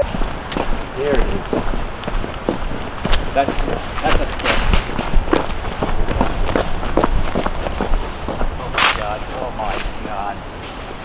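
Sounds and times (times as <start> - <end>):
loud rustling: 0.0 - 10.0
footsteps running: 0.0 - 10.3.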